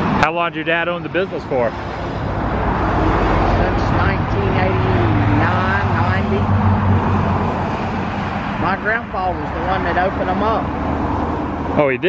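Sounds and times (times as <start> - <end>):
passing cars rumble: 0.0 - 12.0
people talking: 0.2 - 1.8, 3.4 - 6.5, 8.6 - 10.7, 11.8 - 12.0.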